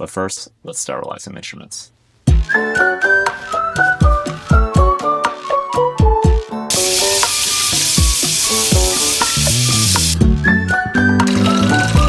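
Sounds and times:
background music with a beat: 0:02.3 - 0:12.0
tap water running into sink: 0:06.7 - 0:10.2.

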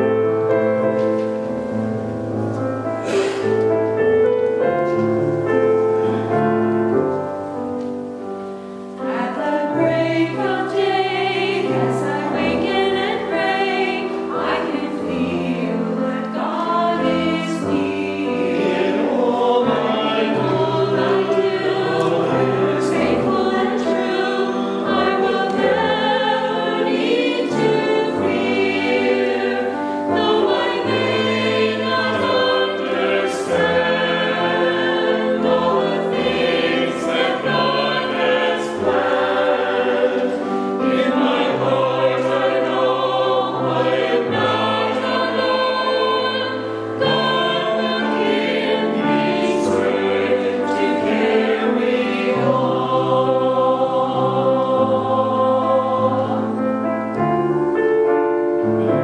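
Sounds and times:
mixed choir singing: 0:03.0 - 0:07.1, 0:08.9 - 0:57.8, 0:58.6 - 0:59.0.

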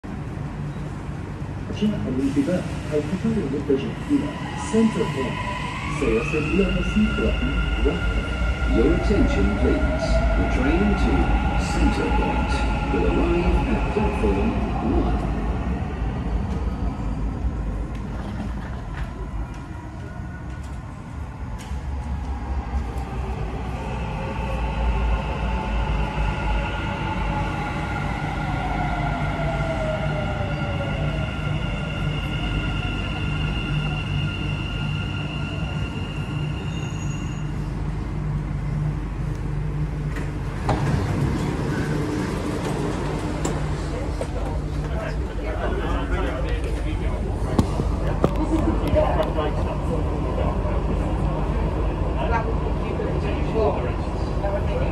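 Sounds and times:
train rumbling with falling whine: 0:00.0 - 0:54.9.

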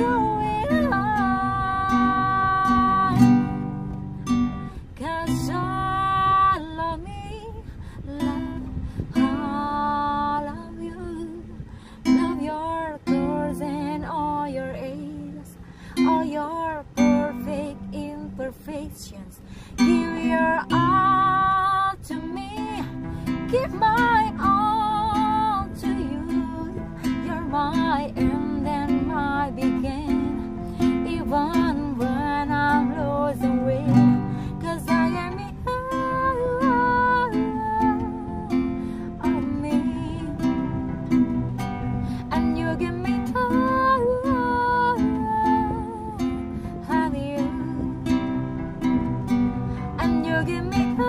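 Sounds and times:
acoustic guitar strumming: 0:00.0 - 0:51.0
woman singing with vibrato: 0:00.0 - 0:51.0.

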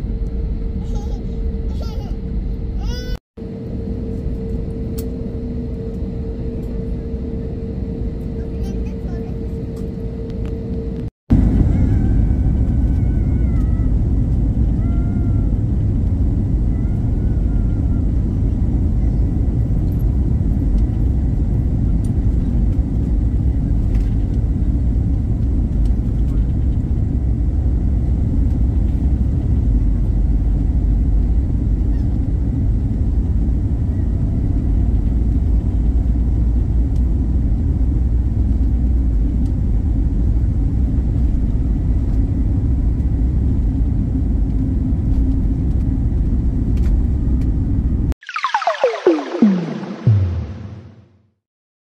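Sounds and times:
jet engines rumbling in cabin: 0:00.0 - 0:50.7.

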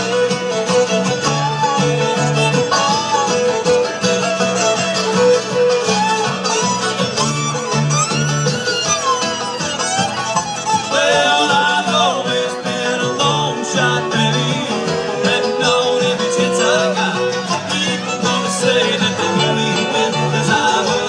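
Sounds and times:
acoustic guitar: 0:00.0 - 0:21.0
banjo: 0:00.0 - 0:21.0
fiddle: 0:00.0 - 0:21.0.

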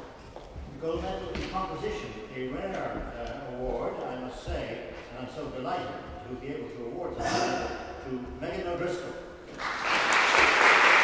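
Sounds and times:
man speaking: 0:00.8 - 0:09.3.

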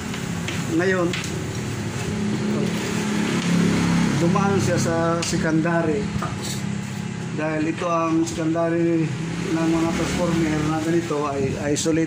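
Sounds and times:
low mechanical drone with hiss: 0:00.0 - 0:12.0.

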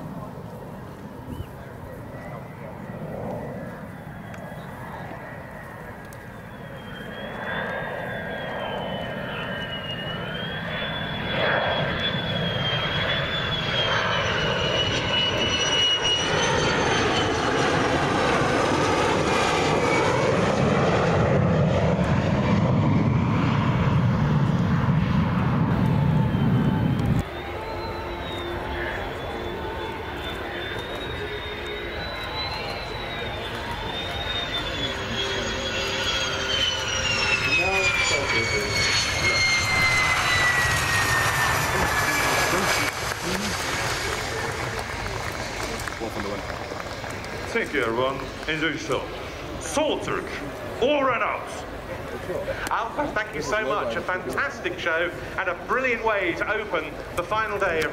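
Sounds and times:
jet roar with high whine: 0:00.0 - 0:57.9.

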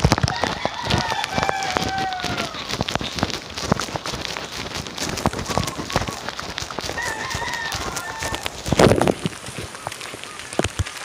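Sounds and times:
close raindrop hits: 0:00.0 - 0:11.0
heavy rain pattering: 0:00.0 - 0:11.0
rooster crowing: 0:00.2 - 0:02.7, 0:06.9 - 0:08.8.

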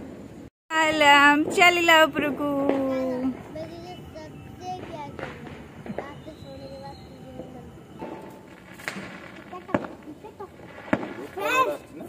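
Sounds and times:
firecrackers banging: 0:00.0 - 0:12.0
faint voices: 0:01.3 - 0:08.4, 0:09.3 - 0:12.0.

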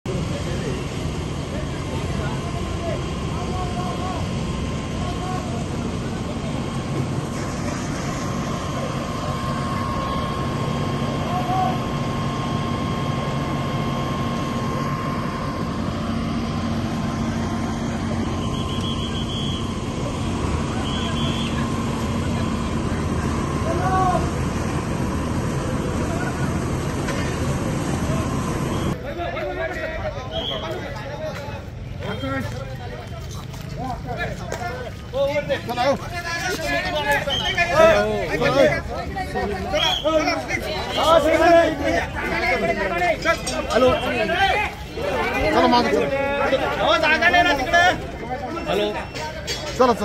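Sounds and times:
vehicle engines idling: 0:00.0 - 0:50.0
constant hum: 0:00.1 - 0:50.0.

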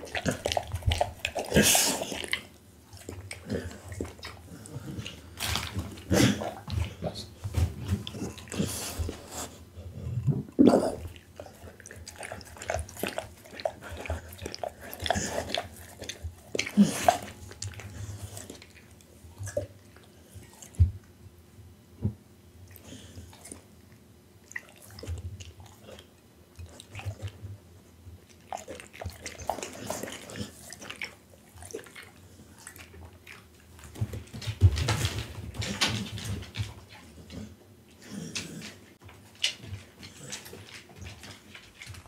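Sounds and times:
dog lapping liquid from bowl: 0:00.0 - 0:09.2, 0:10.4 - 0:19.8, 0:28.2 - 0:42.0.

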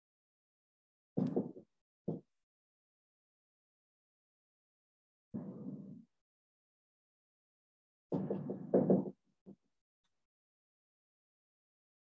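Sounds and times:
marker knocking on whiteboard: 0:08.1 - 0:09.2.

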